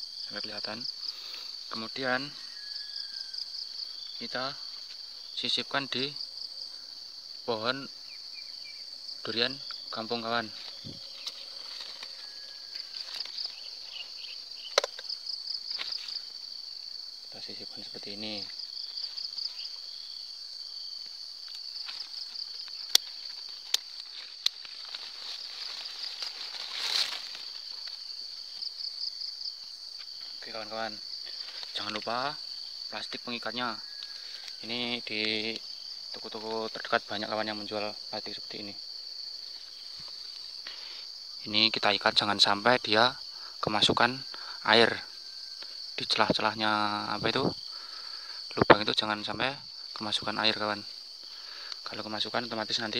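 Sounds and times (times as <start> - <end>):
insects chirring: 0.0 - 52.9.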